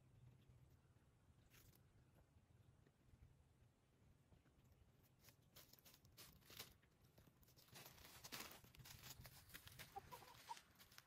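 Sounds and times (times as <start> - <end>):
dry leaves crackling: 5.2 - 11.0
chicken clucking softly: 9.6 - 10.8.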